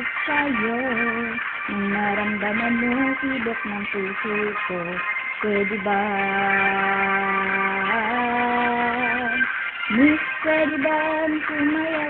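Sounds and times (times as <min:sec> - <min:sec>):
instrumental karaoke backing track: 0:00.0 - 0:12.0.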